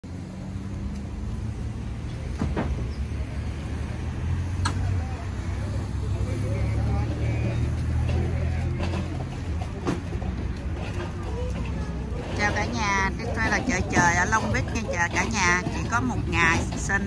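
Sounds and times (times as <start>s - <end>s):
road traffic rumble: 0.0s - 17.0s
faint voices: 4.6s - 17.0s.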